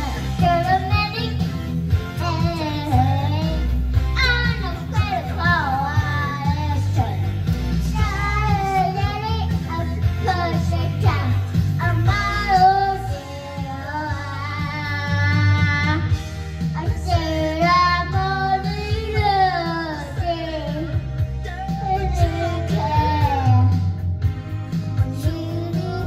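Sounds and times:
backing music: 0.0s - 26.0s
toddler singing into microphone: 7.9s - 16.1s, 16.8s - 24.0s.

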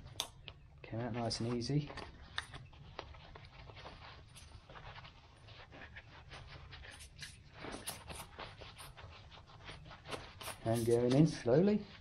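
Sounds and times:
nylon pouch rustling: 1.2s - 12.0s.

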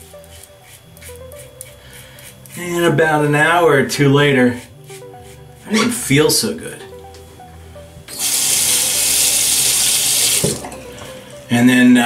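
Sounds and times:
tap water running into sink: 8.1s - 10.7s.

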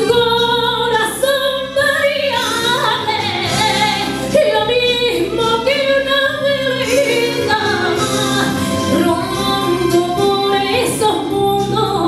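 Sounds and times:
musical accompaniment: 0.0s - 12.0s
woman singing into microphone: 0.0s - 12.0s.

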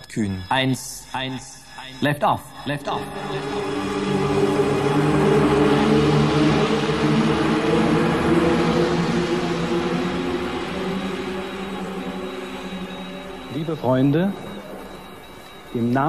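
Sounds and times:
spacecraft engine noise: 2.5s - 16.0s
steady low drone: 2.5s - 16.0s.

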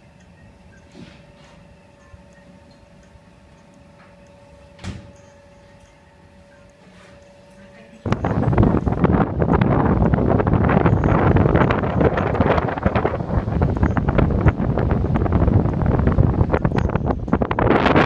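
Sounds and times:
strong wind buffeting microphone: 8.0s - 18.0s.

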